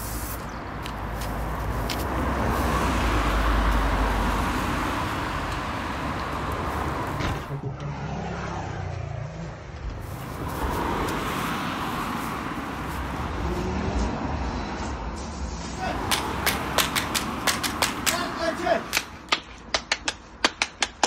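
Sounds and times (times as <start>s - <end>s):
road traffic: 0.0s - 21.0s
car passing by: 1.0s - 19.3s.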